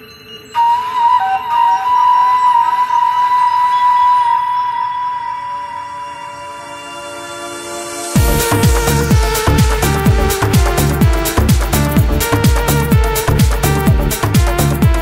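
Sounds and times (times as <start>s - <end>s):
soft synth pad: 0.0s - 15.0s
flute-like synth lead: 0.5s - 15.0s.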